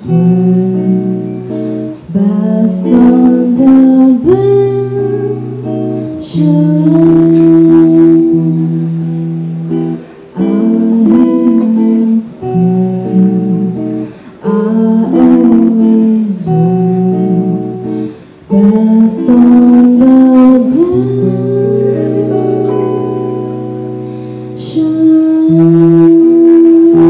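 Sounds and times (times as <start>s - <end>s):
electric guitar: 0.0s - 27.0s
woman singing slow song: 0.0s - 27.0s.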